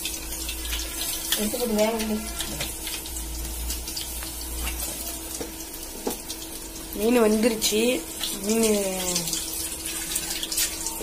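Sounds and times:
fish deep-frying in hot oil: 0:00.0 - 0:11.0.

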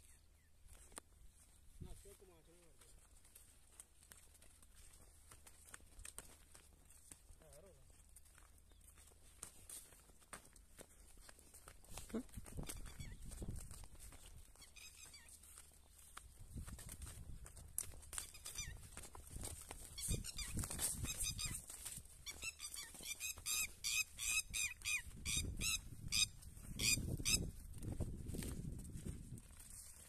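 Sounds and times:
running footsteps through crops: 0:00.0 - 0:30.0.

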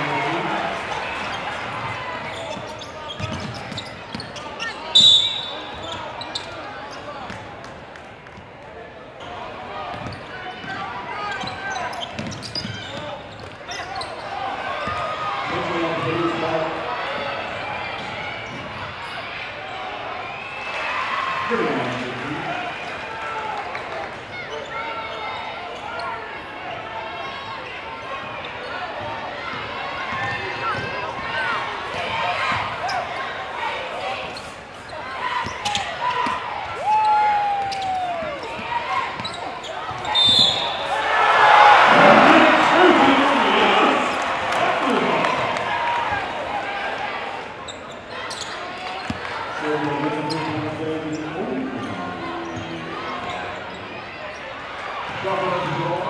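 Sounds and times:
crowd cheering: 0:00.0 - 0:02.6, 0:14.2 - 0:25.8, 0:35.2 - 0:56.0
crowd voices hubbub: 0:00.0 - 0:56.0
basketball bouncing on court: 0:02.5 - 0:04.4, 0:09.9 - 0:10.8, 0:11.4 - 0:13.5.

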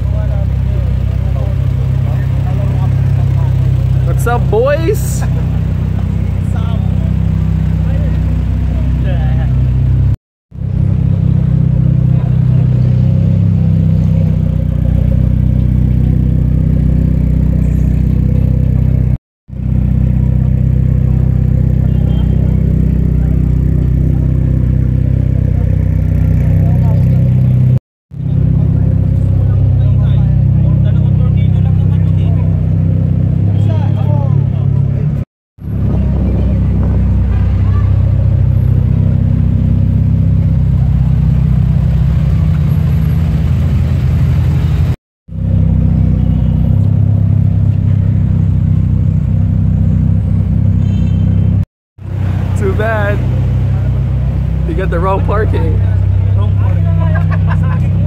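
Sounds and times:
car engine idling: 0:00.0 - 0:58.0
crowd voices: 0:35.8 - 0:38.7, 0:52.3 - 0:58.0.

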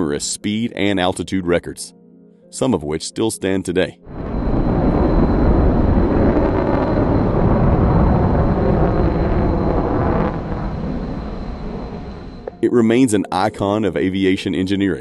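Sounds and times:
jet engine rumble: 0:04.0 - 0:12.7
thin high whine: 0:04.0 - 0:13.1.

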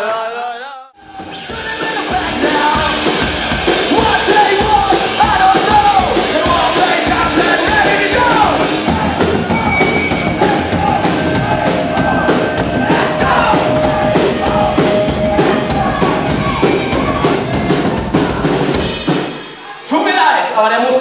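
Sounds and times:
punk rock band playing live: 0:01.0 - 0:20.0.

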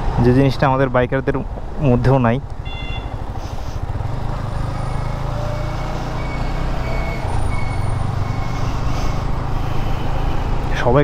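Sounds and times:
road and wind noise: 0:00.0 - 0:11.0
motorcycle engine running: 0:02.4 - 0:10.7.

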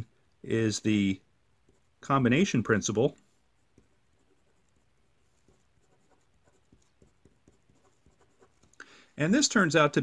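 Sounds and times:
pen scratching on paper: 0:01.7 - 0:01.9, 0:03.6 - 0:08.6.

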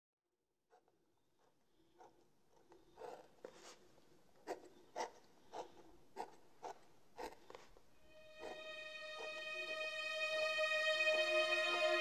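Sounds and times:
pen scratching on paper: 0:00.7 - 0:08.6.

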